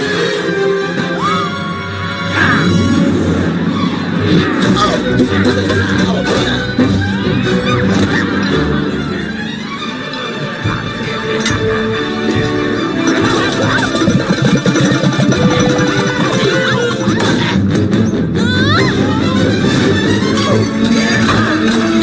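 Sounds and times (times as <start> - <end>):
film soundtrack music: 0.0 - 22.0.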